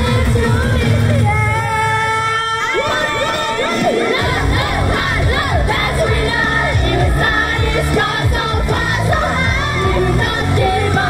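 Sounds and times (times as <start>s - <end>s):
heavy bass beat: 0.0s - 2.2s, 4.0s - 11.0s
girls singing pop song: 0.0s - 11.0s
crowd of fans shouting: 1.2s - 6.6s.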